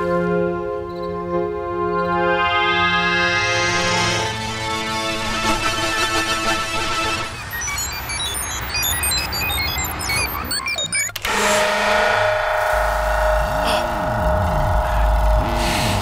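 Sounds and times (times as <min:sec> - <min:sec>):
dense drone with swooping tones: 0:11.2 - 0:16.0.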